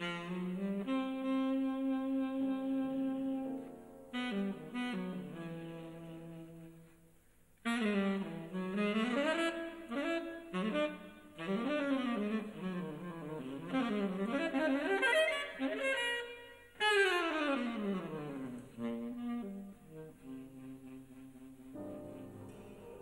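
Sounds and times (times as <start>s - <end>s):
tenor saxophone jazz solo: 0.0s - 22.6s.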